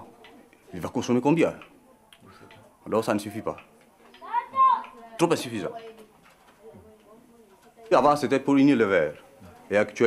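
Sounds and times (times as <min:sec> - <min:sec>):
faint low background sounds: 0:00.0 - 0:10.0.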